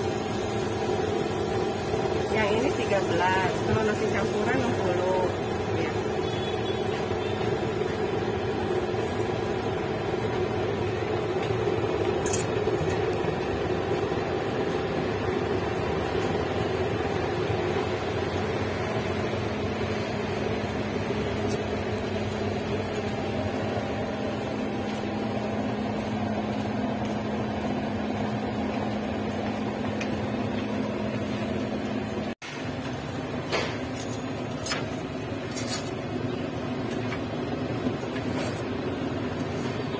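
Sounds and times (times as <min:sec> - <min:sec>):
steady mechanical hum: 0:00.0 - 0:39.9.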